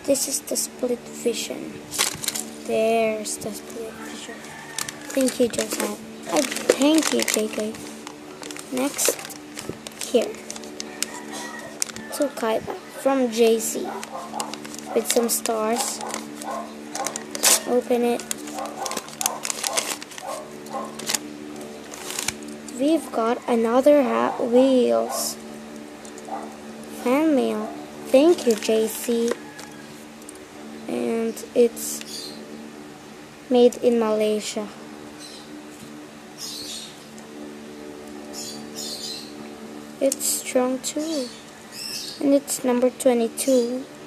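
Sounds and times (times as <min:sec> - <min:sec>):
hum of held tones: 0:00.0 - 0:44.0
paper crinkling and rustling: 0:01.9 - 0:02.6, 0:04.1 - 0:12.5, 0:13.7 - 0:22.6, 0:28.3 - 0:29.8.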